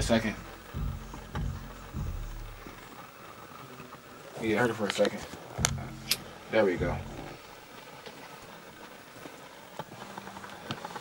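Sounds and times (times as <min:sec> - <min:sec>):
deep bass note from monitors: 0:00.0 - 0:02.9, 0:05.6 - 0:07.6.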